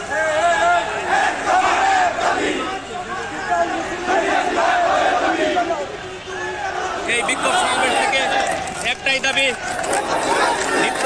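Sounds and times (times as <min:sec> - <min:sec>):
crowd shouting slogans: 0:00.0 - 0:11.0.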